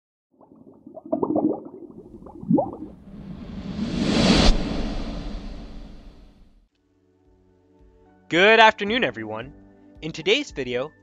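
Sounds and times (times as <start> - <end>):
rising swoop: 2.7 - 6.6
whoosh: 2.7 - 6.6.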